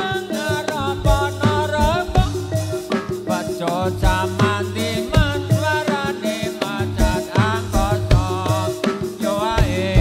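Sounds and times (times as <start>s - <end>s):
wavering melody: 0.0s - 6.8s
drum strokes: 0.0s - 10.0s.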